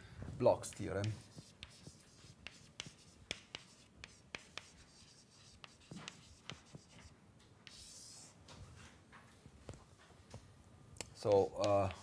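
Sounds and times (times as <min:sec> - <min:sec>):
chalk tapping and scratching: 0:00.6 - 0:08.4, 0:11.2 - 0:12.0
chalk scraping on blackboard: 0:00.7 - 0:08.4.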